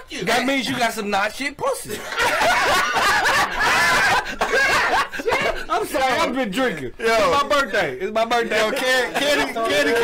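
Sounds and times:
men laughing loudly: 1.9 - 6.4, 8.4 - 10.0.

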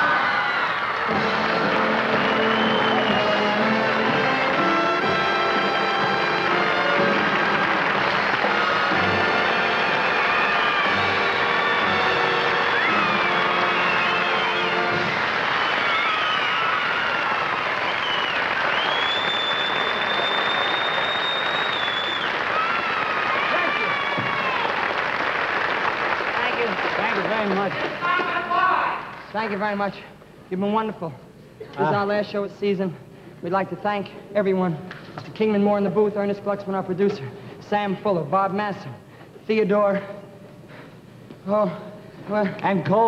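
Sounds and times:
audience cheering and whooping: 0.0 - 4.1, 6.4 - 25.8
live band playing: 1.1 - 15.2
high whistles: 2.0 - 3.7, 9.9 - 23.0.

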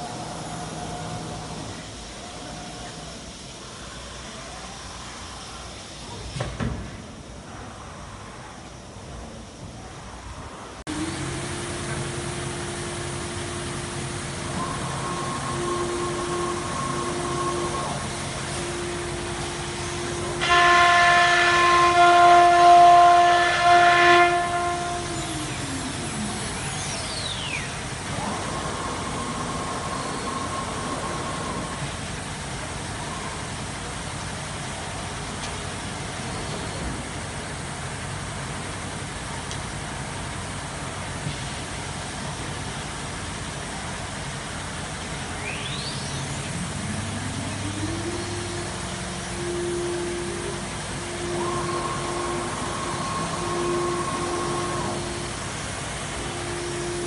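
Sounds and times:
steady workshop hum: 0.0 - 57.0
router spindle high whine: 10.9 - 31.9, 45.3 - 57.0.

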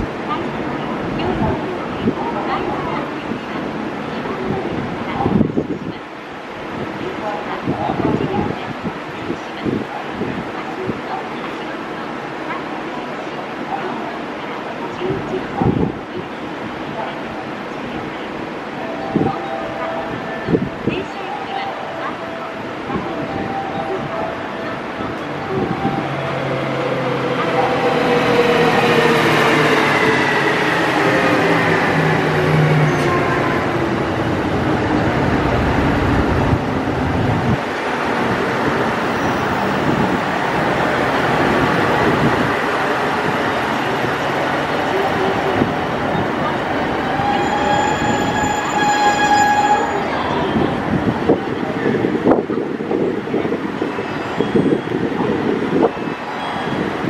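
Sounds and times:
diesel train slowing to a stop: 23.2 - 37.6, 38.8 - 51.3
train brake squeal: 47.2 - 50.1.

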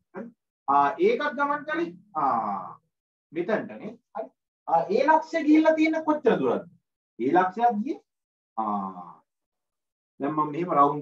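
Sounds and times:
man speaking: 3.4 - 8.0.

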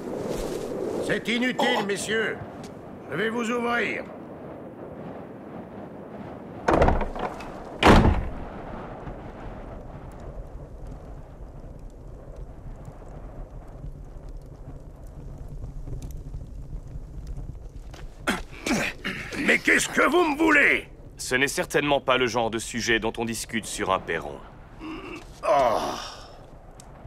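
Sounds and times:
heavy door thunks: 6.7 - 8.4.

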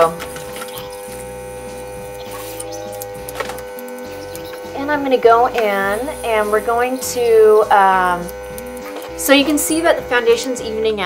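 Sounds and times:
small compressor humming: 0.0 - 11.0.

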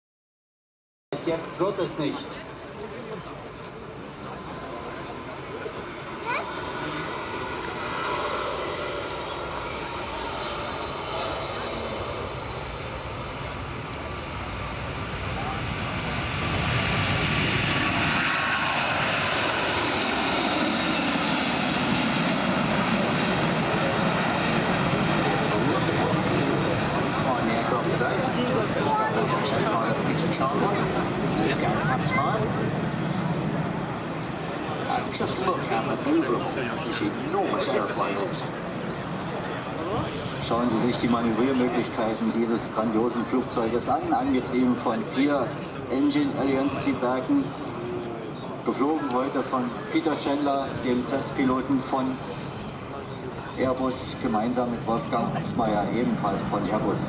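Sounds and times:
jet airliner taking off: 1.2 - 57.0.

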